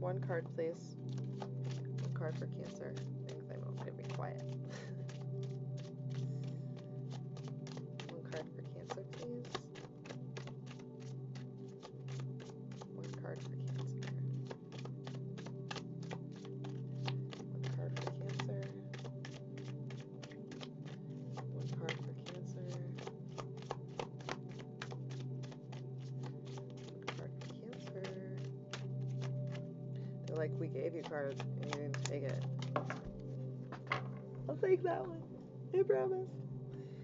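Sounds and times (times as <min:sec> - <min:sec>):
background music with low drone: 0:00.0 - 0:37.0
cards being shuffled: 0:01.1 - 0:29.7, 0:30.3 - 0:34.4.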